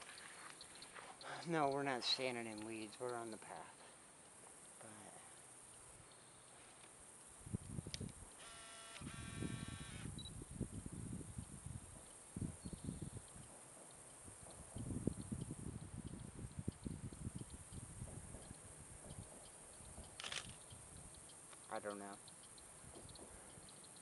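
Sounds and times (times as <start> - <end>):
high insect drone: 0.0 - 24.0
wind gusts on microphone: 7.4 - 8.3, 9.0 - 13.5, 14.2 - 21.1.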